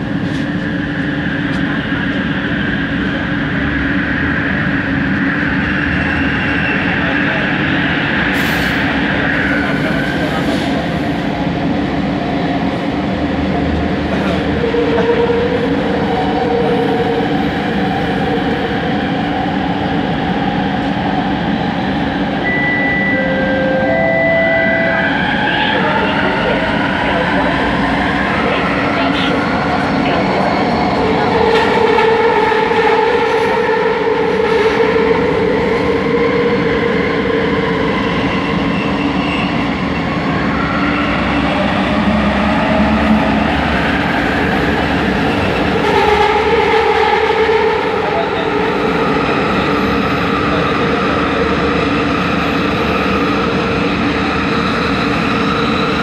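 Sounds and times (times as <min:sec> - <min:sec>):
train rumble and rolling noise: 0:00.0 - 0:56.0.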